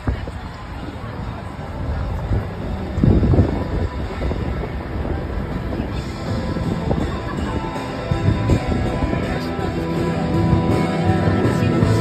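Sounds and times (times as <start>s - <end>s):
street noise: 0.0s - 12.0s
wind buffeting microphone: 0.0s - 12.0s.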